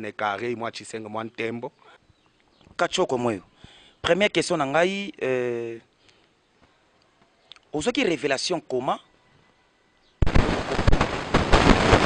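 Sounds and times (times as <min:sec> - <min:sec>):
loud dense crackling: 0:10.2 - 0:12.0.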